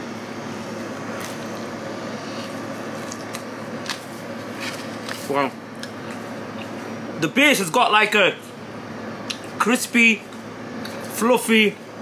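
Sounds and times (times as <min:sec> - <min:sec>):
man chewing bread: 0:01.1 - 0:06.9.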